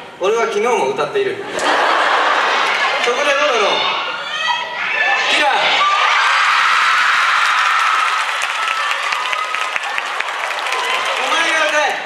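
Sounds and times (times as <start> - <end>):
cheering: 1.6 - 12.0
audience applauding: 6.2 - 12.0.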